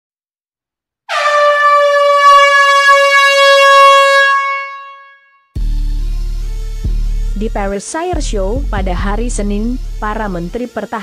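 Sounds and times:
loud horn blast: 0:01.1 - 0:05.7
background music: 0:05.6 - 0:11.0.

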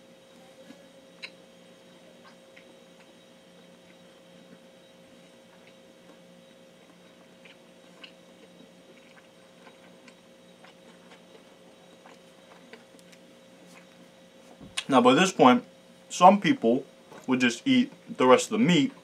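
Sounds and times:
faint electrical hum: 0:00.0 - 0:19.0
chewing with mouth clicks: 0:00.7 - 0:01.4, 0:02.2 - 0:14.1.

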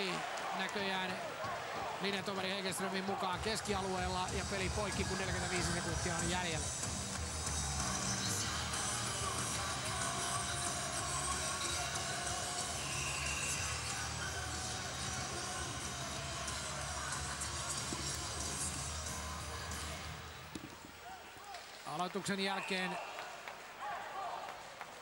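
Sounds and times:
arena music over loudspeakers: 0:01.9 - 0:20.5.

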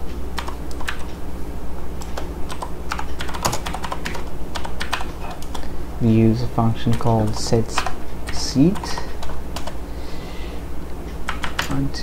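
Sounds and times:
steady low hum: 0:00.0 - 0:12.0
keyboard typing: 0:00.4 - 0:01.2, 0:02.0 - 0:05.7, 0:06.7 - 0:09.8, 0:11.1 - 0:11.9.

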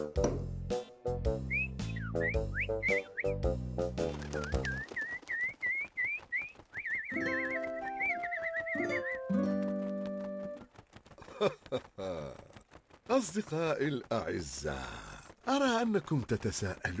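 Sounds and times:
bouncy cartoon music: 0:00.0 - 0:04.8, 0:07.1 - 0:10.7
quick whistle-like chirps: 0:01.4 - 0:03.4, 0:04.4 - 0:09.3.

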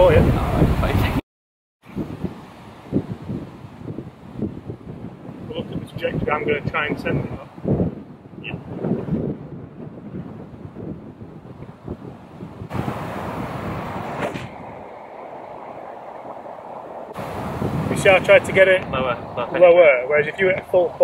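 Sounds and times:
wind buffeting microphone: 0:00.0 - 0:01.2, 0:01.8 - 0:21.0.

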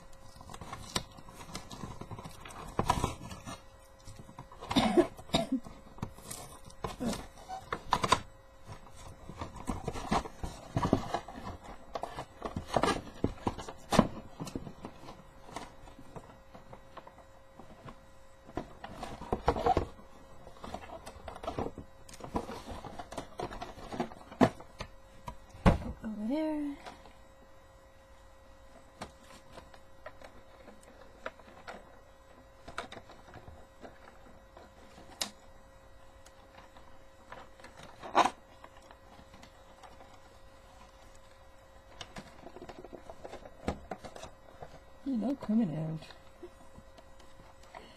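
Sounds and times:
cardboard and plastic rustling: 0:00.0 - 0:47.9
faint steady hum: 0:00.0 - 0:47.9.

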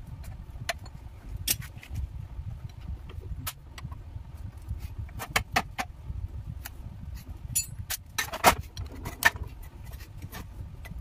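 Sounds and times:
steady low rumble: 0:00.0 - 0:11.0
metal parts clinking: 0:07.5 - 0:09.2.

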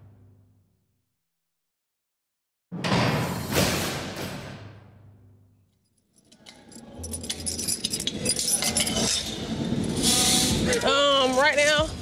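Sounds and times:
metallic clinking and jangling: 0:06.0 - 0:10.1.

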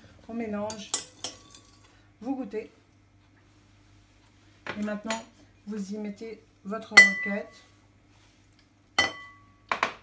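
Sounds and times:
glass bowl clink: 0:07.0 - 0:07.5, 0:09.0 - 0:09.5.

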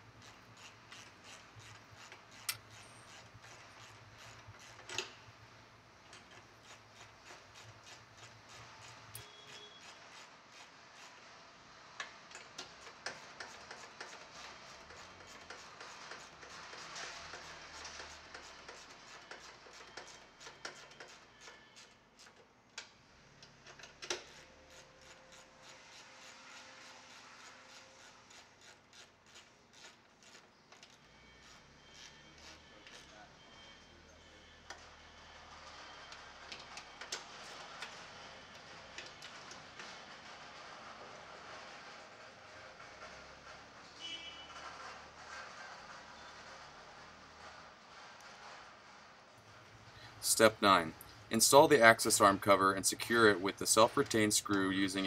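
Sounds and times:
socket wrench ratcheting: 0:00.2 - 0:05.1.

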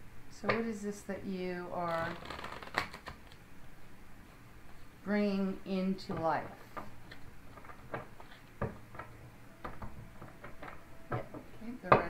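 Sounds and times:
cards being shuffled: 0:01.9 - 0:03.4, 0:06.6 - 0:10.9
cards rustling: 0:02.0 - 0:03.4.

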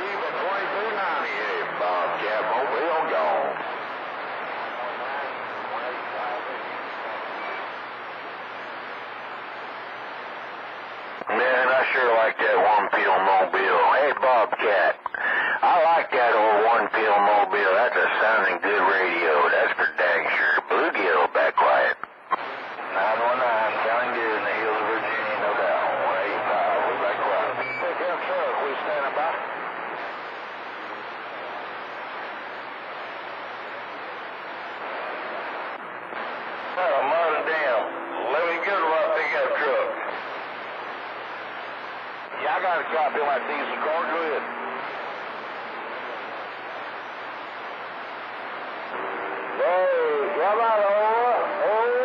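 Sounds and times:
radio static hiss: 0:00.0 - 0:52.0
radio voices through static: 0:00.0 - 0:52.0.

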